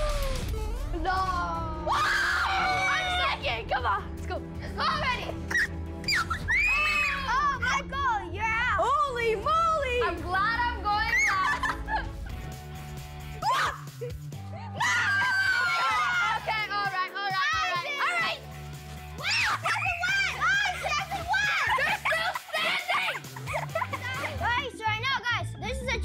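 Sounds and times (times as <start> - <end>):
children shouting and laughing: 0.0 - 3.9, 4.6 - 12.1, 13.4 - 18.5, 19.1 - 26.0
music with low bass: 3.2 - 14.8.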